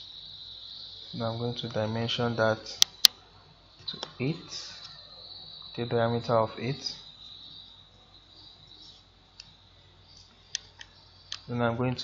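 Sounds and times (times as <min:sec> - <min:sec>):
low hiss: 0:00.0 - 0:12.0
steady high-pitched whine: 0:00.0 - 0:12.0.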